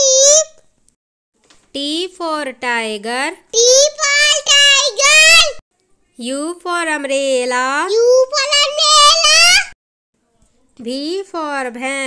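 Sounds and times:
child singing a phonics song: 0:00.0 - 0:00.6, 0:03.5 - 0:05.5.

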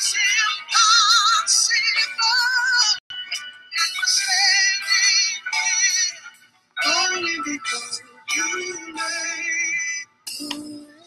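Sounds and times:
high voice singing with vibrato: 0:06.8 - 0:11.0.

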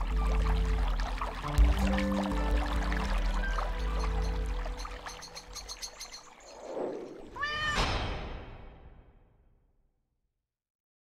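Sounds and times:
soundtrack music twinkling notes: 0:00.0 - 0:06.6
cat meowing: 0:07.4 - 0:07.8.

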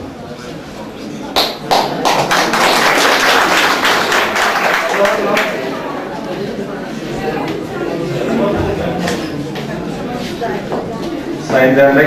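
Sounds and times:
audience applauding: 0:01.4 - 0:06.0.

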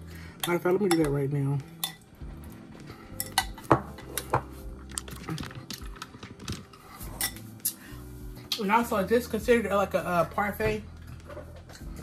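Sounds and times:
spoon clinking against glass: 0:01.8 - 0:02.0, 0:07.2 - 0:07.8.

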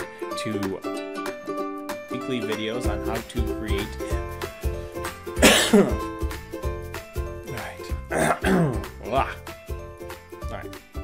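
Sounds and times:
background music with steady beat: 0:00.0 - 0:11.0
man clearing his throat: 0:05.4 - 0:06.1, 0:08.1 - 0:08.9.

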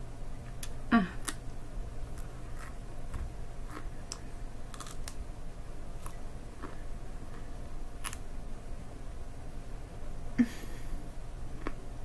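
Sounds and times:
low background hum: 0:00.0 - 0:12.0
crisp chewing crunches: 0:02.1 - 0:05.2, 0:06.0 - 0:08.2.

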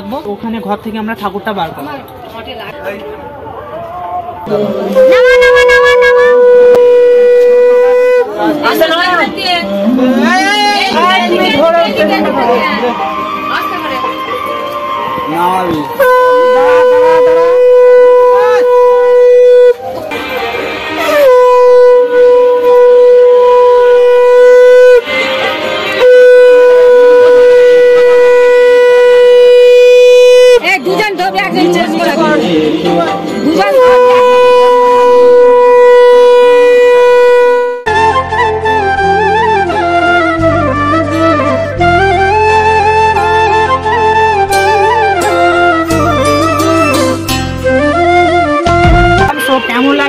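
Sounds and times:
conch shell blown in long note: 0:04.5 - 0:11.2, 0:15.8 - 0:30.6, 0:33.6 - 0:50.0.

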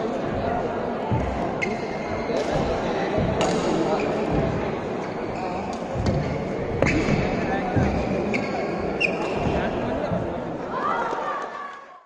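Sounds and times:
chatter of spectators: 0:00.0 - 0:12.0
sneakers squeaking on floor: 0:01.1 - 0:10.3
racket hitting shuttlecock: 0:02.4 - 0:03.8.

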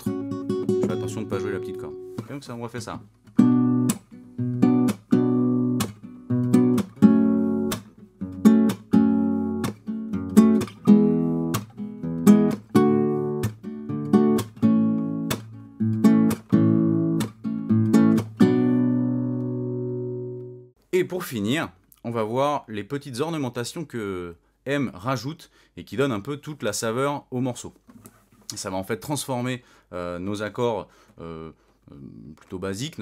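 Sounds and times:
acoustic guitar fingerpicking: 0:00.0 - 0:02.3, 0:03.1 - 0:20.7.

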